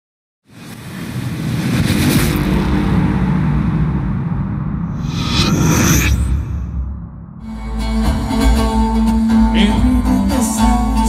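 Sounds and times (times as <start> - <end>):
deep rumble: 1.0 - 8.7
bright whoosh: 4.9 - 7.2
hissing whoosh: 4.9 - 7.3.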